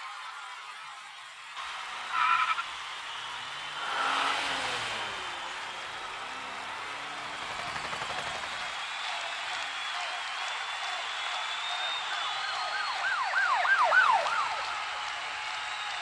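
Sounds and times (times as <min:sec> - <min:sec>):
car engine revving: 0:01.6 - 0:08.6.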